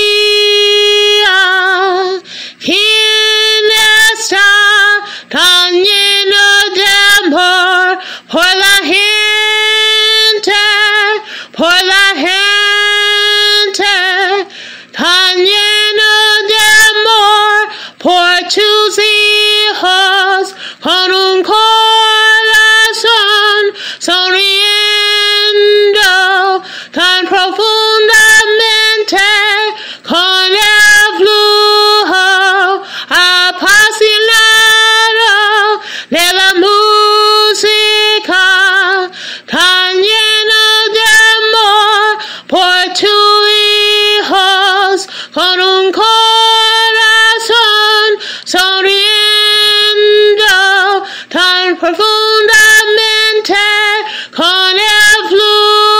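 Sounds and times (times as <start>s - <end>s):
woman singing unaccompanied: 0.0s - 55.9s.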